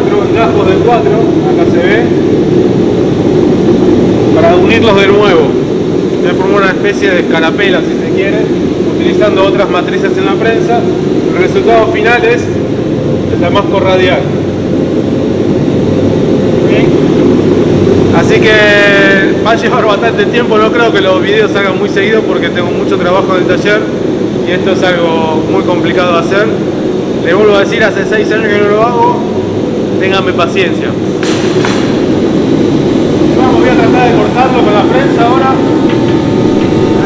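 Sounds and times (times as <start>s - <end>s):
forge burner roaring: 0.0s - 37.0s
forge roaring: 30.8s - 37.0s.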